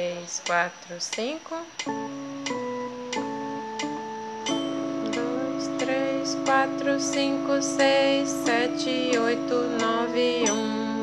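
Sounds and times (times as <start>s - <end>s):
electronic organ playing hymn: 1.8s - 11.0s.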